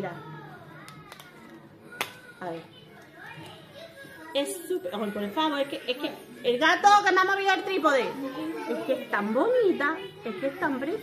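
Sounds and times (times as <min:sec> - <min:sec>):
children's voices: 0:00.1 - 0:06.4, 0:08.0 - 0:11.0
woman speaking: 0:04.4 - 0:11.0.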